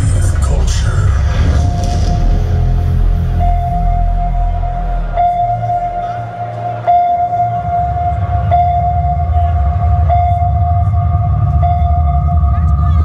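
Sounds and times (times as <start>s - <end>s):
deep rumbling bass: 0.0s - 13.0s
horn-like synth tone: 2.1s - 12.6s.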